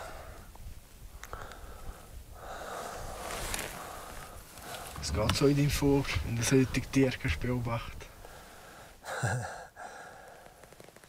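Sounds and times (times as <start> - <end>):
person breathing: 0.0 - 0.5, 1.3 - 5.0, 8.2 - 10.8
faint clicks: 1.2 - 1.7, 10.2 - 11.0.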